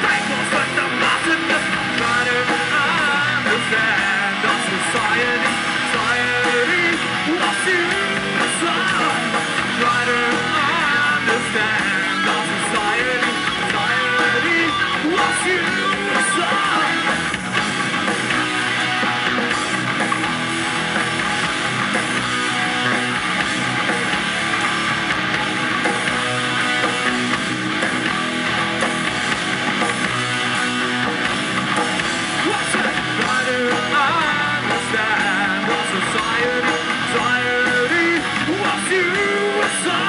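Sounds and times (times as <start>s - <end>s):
metal band playing: 0.0s - 40.0s.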